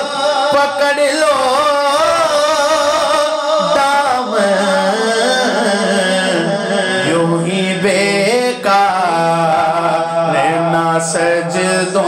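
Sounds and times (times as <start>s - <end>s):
man singing a long note: 0.0s - 12.0s.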